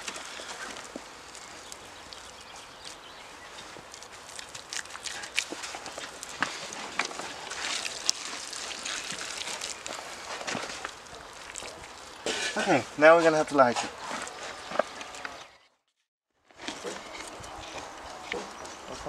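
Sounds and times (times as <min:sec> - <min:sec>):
clay and straw rustling crunching: 0:00.0 - 0:15.5, 0:16.5 - 0:19.0.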